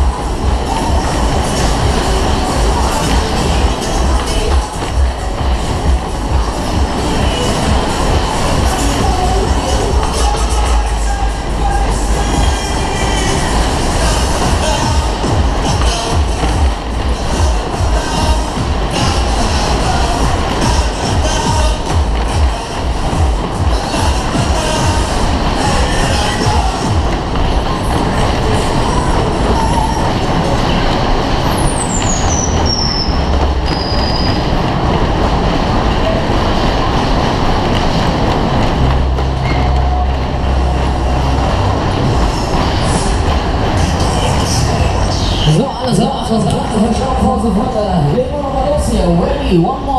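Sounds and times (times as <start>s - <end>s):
fairground ride music: 0.0s - 49.9s
ride cars rumbling and clattering: 0.0s - 49.9s.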